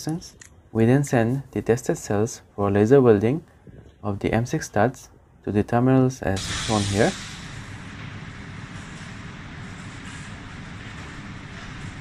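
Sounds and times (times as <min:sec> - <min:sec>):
welding machine hum with hiss: 0:06.4 - 0:12.0.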